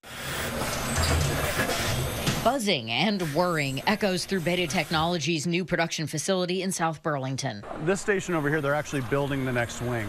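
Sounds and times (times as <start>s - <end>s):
machinery buzzing and whirring: 0.0s - 5.4s, 7.6s - 10.0s.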